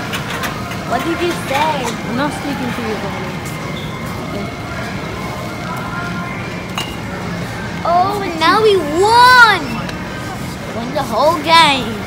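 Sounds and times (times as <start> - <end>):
store background hum: 0.0 - 12.0
glass bottles clinking: 6.7 - 7.1.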